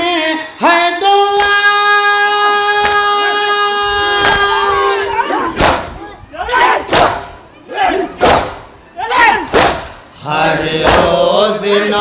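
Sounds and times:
men chanting together: 9.4 - 12.0.

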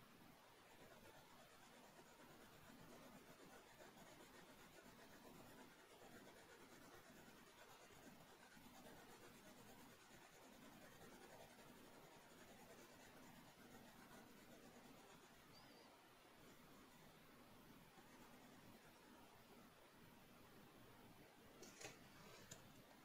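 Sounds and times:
pencil scratching on paper: 0.6 - 15.4, 18.0 - 19.0.

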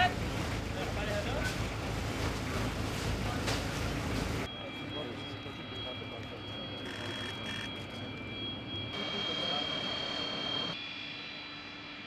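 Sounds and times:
outdoor noise: 0.0 - 12.0
high-pitched machinery whine: 4.5 - 12.0.

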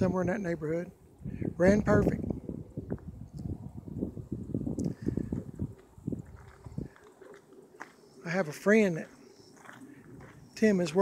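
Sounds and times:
footsteps crunching on gravel: 5.8 - 8.1, 8.8 - 11.0.

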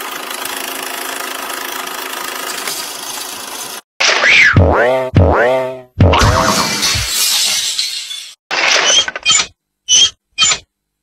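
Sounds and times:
cartoon boing effects: 4.2 - 6.8.

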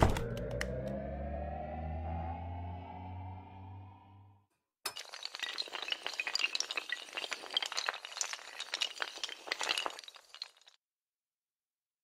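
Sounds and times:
tinkling glass fragments: 4.9 - 10.8.

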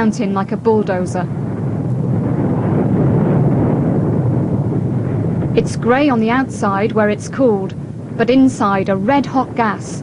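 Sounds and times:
low rumbling of volcanic flow: 0.0 - 10.0.

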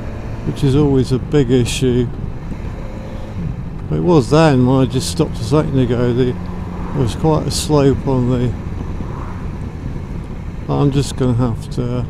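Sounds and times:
wind noise on microphone: 6.2 - 10.8.

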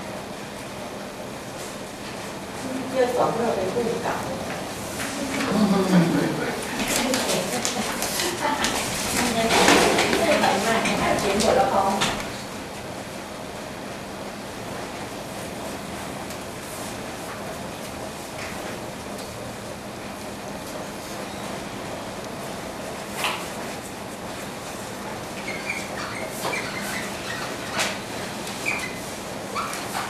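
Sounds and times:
room hiss with low hum: 0.0 - 30.0
marker squeaks: 25.4 - 30.0.

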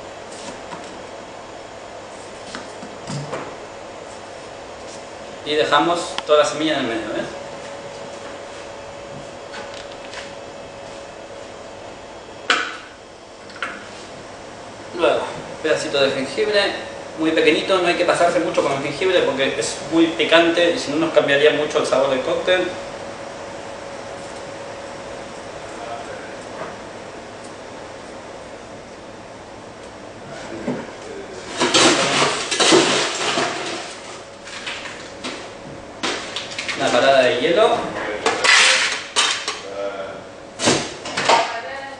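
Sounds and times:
low room hum: 0.0 - 41.9.

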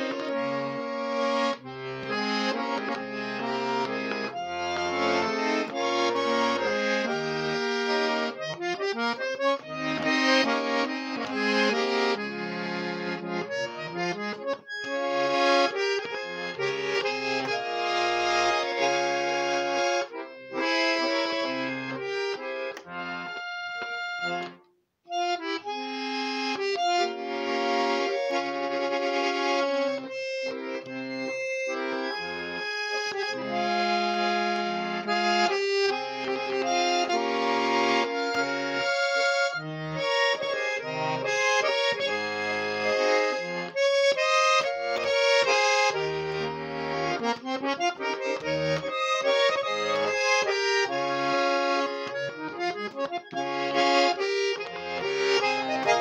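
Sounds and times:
button accordion folk tune: 0.0 - 56.0.

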